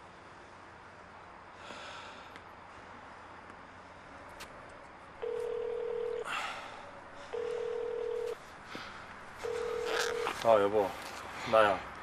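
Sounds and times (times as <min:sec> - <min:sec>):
phone ringback tone beeps: 0:05.2 - 0:06.2, 0:07.3 - 0:08.4, 0:09.4 - 0:10.4.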